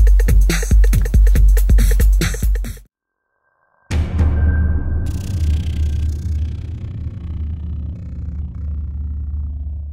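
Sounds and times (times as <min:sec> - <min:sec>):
deep low rumble: 0:04.6 - 0:09.9.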